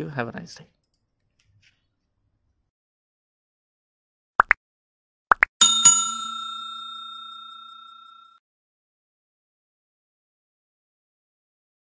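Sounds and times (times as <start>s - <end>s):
bright bell ringing: 5.6s - 8.4s.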